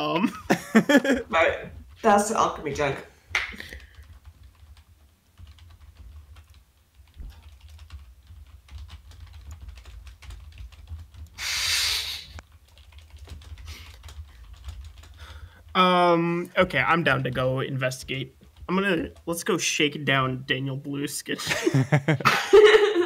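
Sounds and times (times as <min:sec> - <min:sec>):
burst of hiss: 0:11.4 - 0:12.4.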